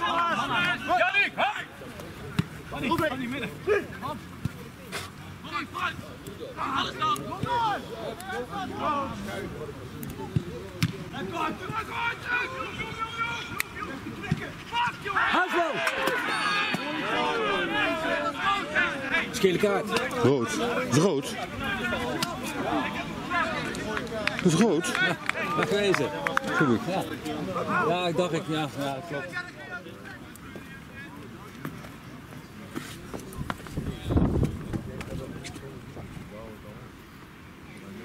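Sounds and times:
men shouting and cheering: 0.0s - 1.9s, 5.4s - 9.6s, 11.0s - 30.6s
distant voices of players calling: 0.0s - 38.0s.

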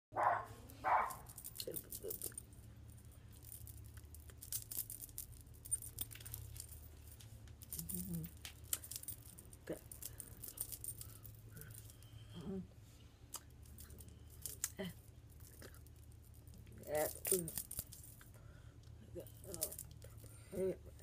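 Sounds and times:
low steady hum: 0.1s - 21.0s
light clicking and rattling: 0.7s - 12.2s, 13.3s - 21.0s.

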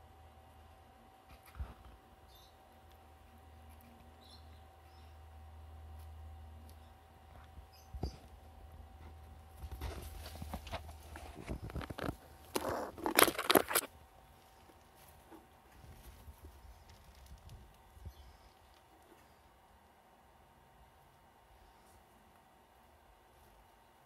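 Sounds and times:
squirrel scrabbling and scratching: 5.8s - 19.5s.

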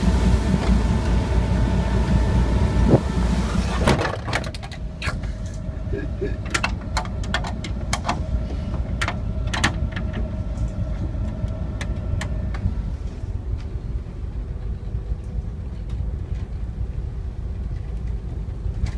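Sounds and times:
diesel engine rumbling: 0.0s - 18.9s
sharp clicks and knocks: 6.4s - 12.7s.

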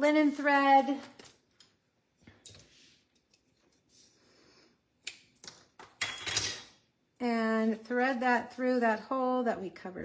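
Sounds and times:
light rustling of craft supplies: 0.2s - 5.8s.

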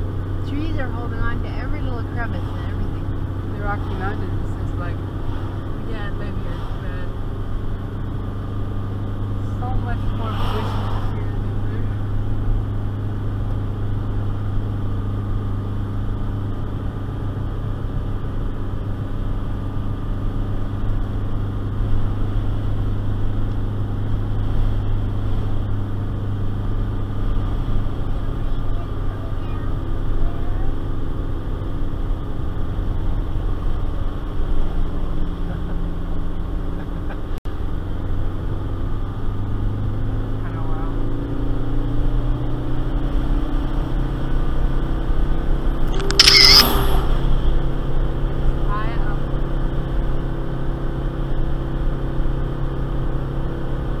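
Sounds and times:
car engine droning under load: 0.0s - 54.0s.

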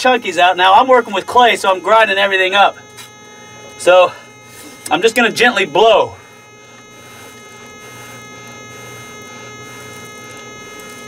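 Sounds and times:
electrical hum: 0.0s - 11.0s
thin high steady tones: 0.0s - 11.0s.

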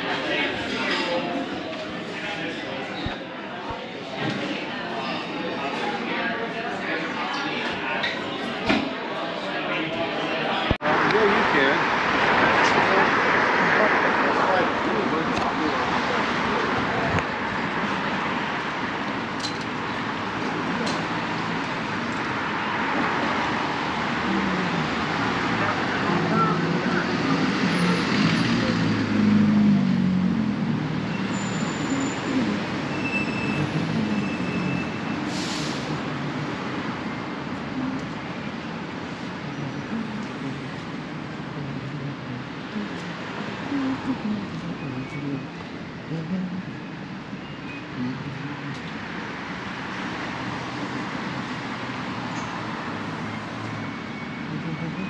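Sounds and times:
street traffic passing: 0.0s - 55.0s.

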